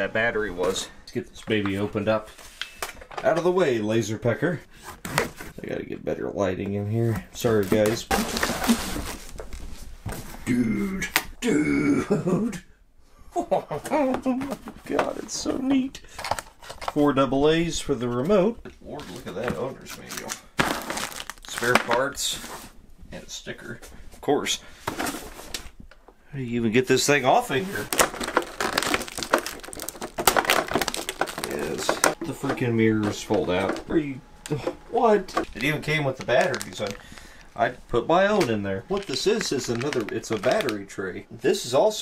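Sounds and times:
cardboard box rustling and scraping: 7.7s - 10.4s
plastic packaging crinkling: 19.0s - 22.7s, 27.5s - 41.0s.

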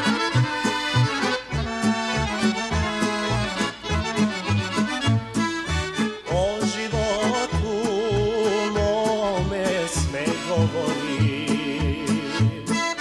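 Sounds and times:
accordion melody: 0.0s - 13.0s
pulsing bass and rhythm: 0.0s - 13.0s
wavering melody with vibrato: 0.0s - 13.0s.

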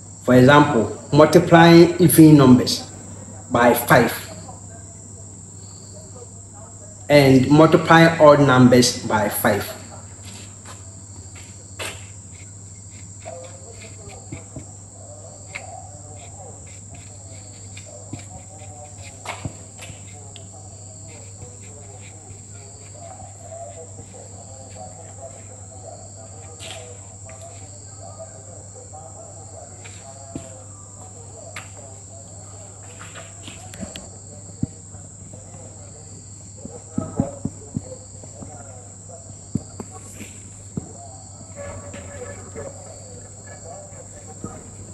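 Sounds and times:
marker squeaking on whiteboard: 7.2s - 28.0s, 39.5s - 44.9s
marker tapping on whiteboard: 15.5s - 24.8s.

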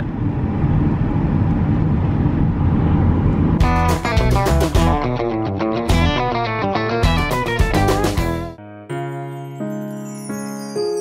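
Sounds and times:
car road rumble: 0.0s - 3.6s
guitar music: 3.6s - 10.1s.

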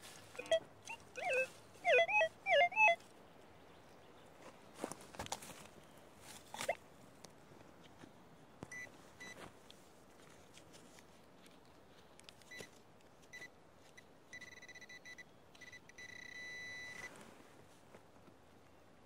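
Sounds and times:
pinpointer beeping: 0.4s - 3.0s, 14.4s - 17.0s.

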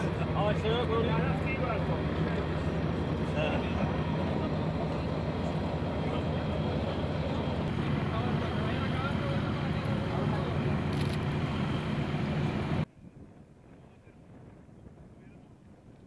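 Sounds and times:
people's voices: 0.0s - 11.8s
heavy vehicle engines idling: 0.0s - 12.9s.

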